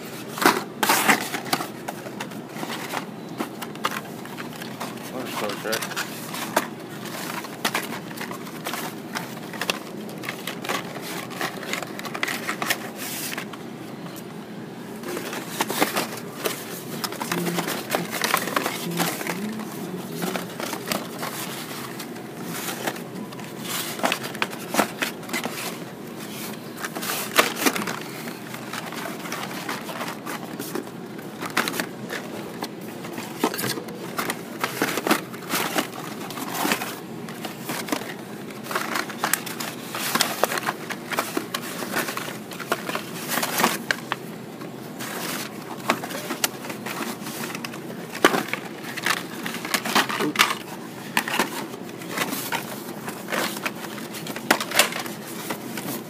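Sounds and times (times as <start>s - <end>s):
low background hum: 0.0s - 56.0s
plastic packages clacking and rustling: 0.0s - 56.0s.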